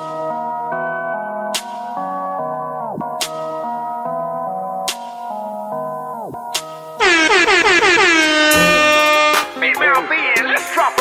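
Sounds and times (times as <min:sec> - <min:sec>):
air horn sound effect: 0:07.0 - 0:09.6
hip-hop song pitching down: 0:07.0 - 0:11.0.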